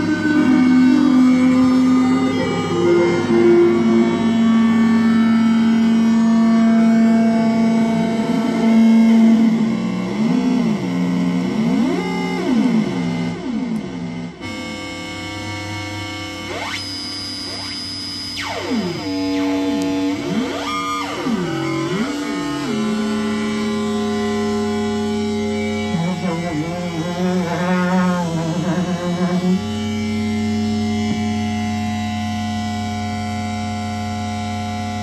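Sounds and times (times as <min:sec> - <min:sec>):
electronic noise drone: 0:00.0 - 0:35.0.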